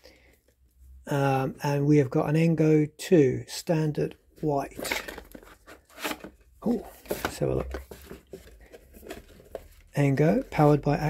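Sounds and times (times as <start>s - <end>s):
cardboard box rustling: 4.8s - 10.8s.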